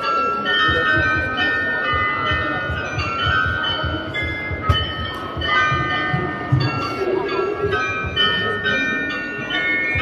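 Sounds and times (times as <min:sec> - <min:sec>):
bells playing a tune: 0:00.0 - 0:10.0
voices murmuring: 0:00.0 - 0:10.0.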